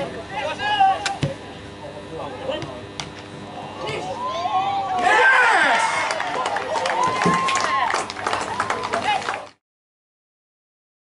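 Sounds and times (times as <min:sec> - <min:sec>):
faint shouts of players: 0:03.7 - 0:08.0.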